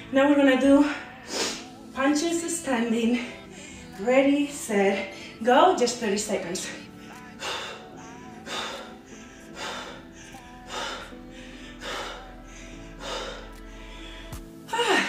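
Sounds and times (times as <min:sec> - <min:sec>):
music with a steady beat: 0:07.0 - 0:15.0.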